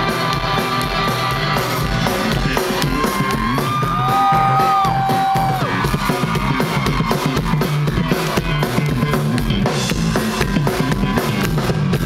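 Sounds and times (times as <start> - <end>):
drums: 0.0 - 12.0
electric guitars: 0.0 - 12.0.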